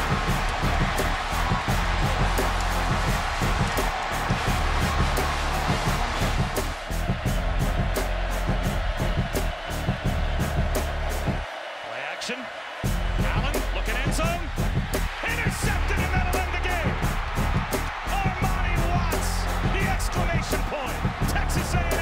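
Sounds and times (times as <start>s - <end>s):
hype music with heavy beat: 0.0s - 22.0s.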